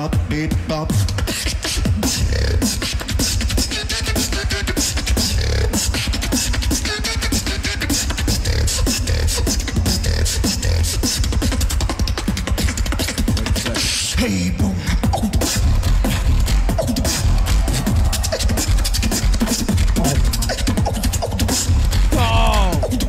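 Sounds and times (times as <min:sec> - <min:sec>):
beatboxing: 0:00.0 - 0:23.0
pitched vocal sweeps: 0:22.1 - 0:23.0.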